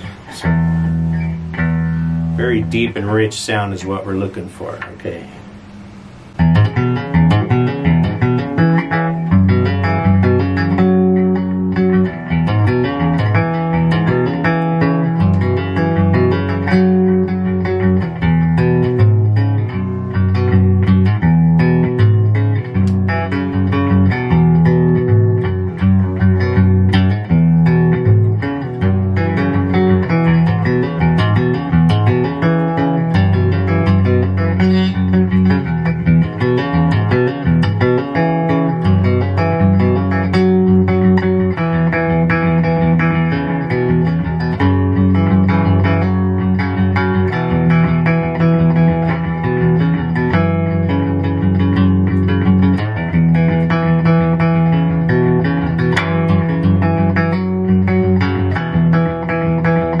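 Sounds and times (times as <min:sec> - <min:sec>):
cigar box guitar playing: 0:00.0 - 1:00.0.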